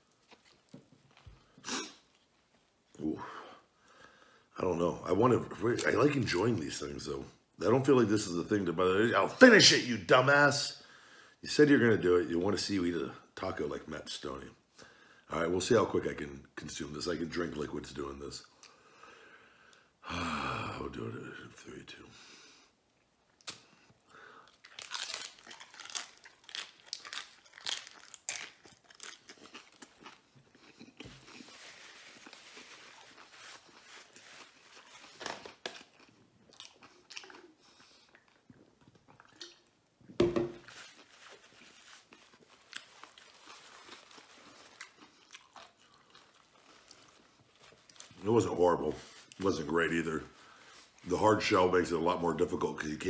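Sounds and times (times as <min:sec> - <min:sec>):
chewing: 0:24.4 - 0:39.7, 0:40.8 - 0:48.2
crunching taco bites: 0:24.4 - 0:39.8, 0:40.6 - 0:48.3.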